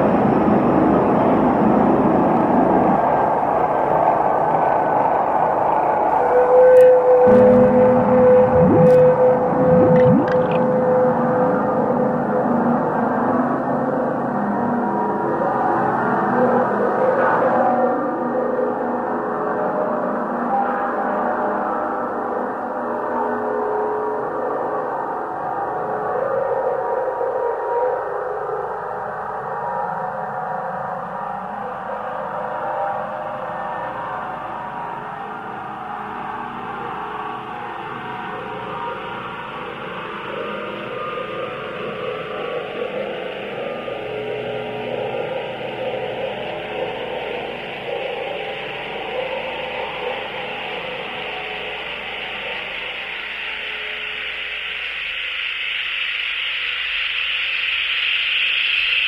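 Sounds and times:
rushing noise with rising sweep: 7.9s - 10.7s.

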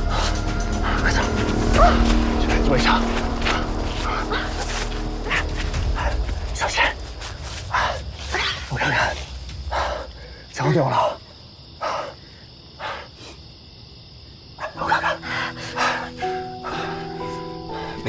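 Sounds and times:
tense music score: 0.0s - 11.7s, 14.7s - 18.0s.

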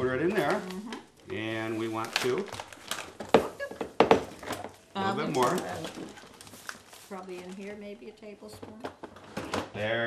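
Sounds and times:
kitchenware knocks: 3.2s - 4.6s.

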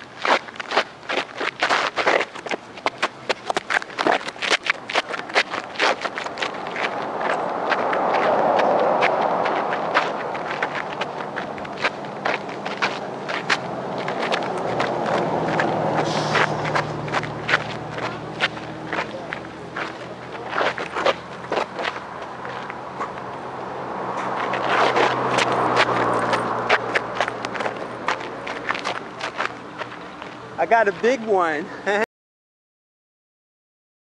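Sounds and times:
shoes crunching on gravel: 0.0s - 31.0s
wide noise: 0.0s - 32.0s.

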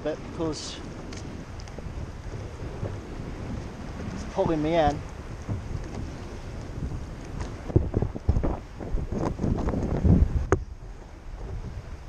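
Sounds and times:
sea water lapping: 0.0s - 12.0s
wind buffeting microphone: 0.0s - 12.0s.

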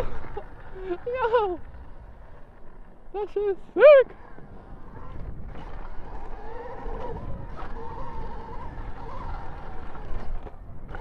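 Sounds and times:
electric motor whining: 3.9s - 11.0s.

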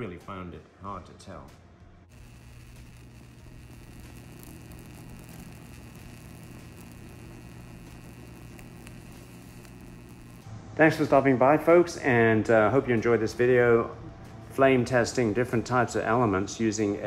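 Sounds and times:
plasma flame humming and crackling: 2.1s - 10.5s.

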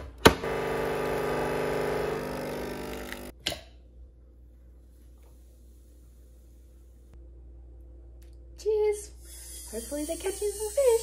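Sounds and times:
coffee machine pump buzzing: 0.3s - 3.3s.

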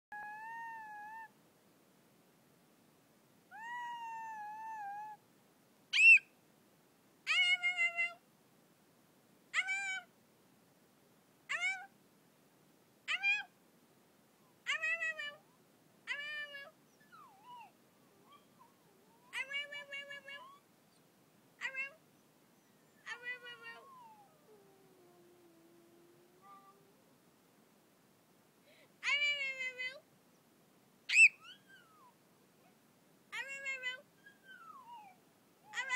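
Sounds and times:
small dog howling: 0.2s - 1.3s, 3.5s - 5.2s, 9.6s - 10.1s, 11.5s - 11.9s, 13.1s - 13.5s, 14.6s - 15.4s, 16.1s - 20.6s, 21.6s - 22.0s, 22.6s - 27.0s, 31.1s - 35.9s.

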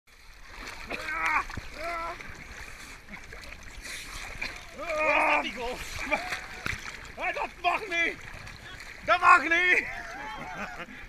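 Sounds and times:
water splashing in a pool: 0.1s - 11.0s.

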